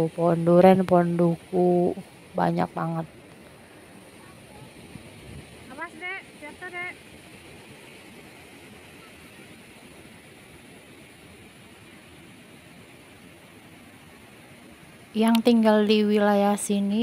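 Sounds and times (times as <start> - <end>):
river rushing through weir: 0.0 - 17.0.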